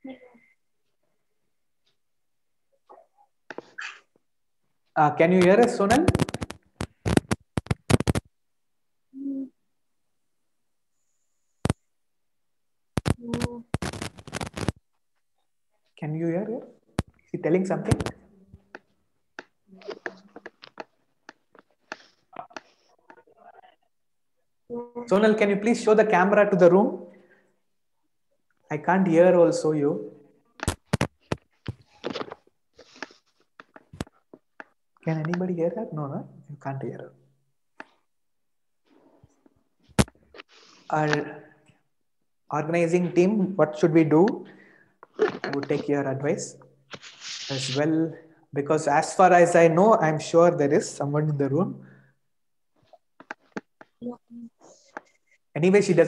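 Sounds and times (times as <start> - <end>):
sharp clicks and crackles: 5.9 - 8.3, 13.0 - 14.8.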